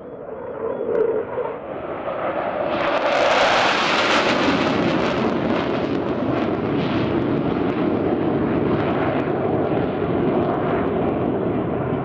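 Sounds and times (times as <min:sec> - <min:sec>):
jet aircraft rumbling past: 0:00.0 - 0:09.2.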